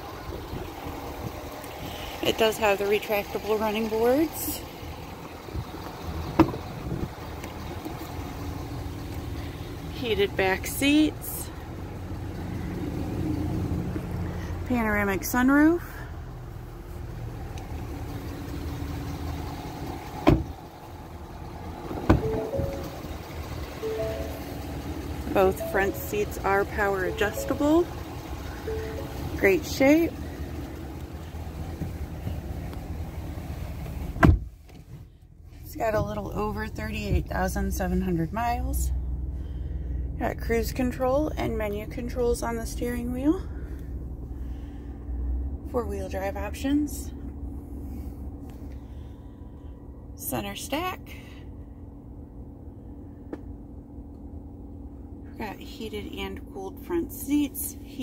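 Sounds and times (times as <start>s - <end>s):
diesel engine idling: 0.0s - 58.0s
low steady rumble: 0.0s - 58.0s
car door shutting: 6.3s - 6.6s, 20.0s - 20.6s, 21.8s - 23.1s, 33.8s - 34.9s.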